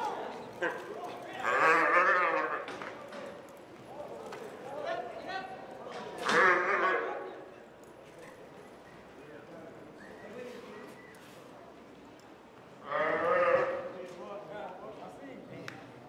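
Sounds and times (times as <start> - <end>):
quiet arena sounds: 0.0 - 16.0
calf bawling loudly: 1.4 - 2.7, 6.2 - 7.2, 12.8 - 13.9.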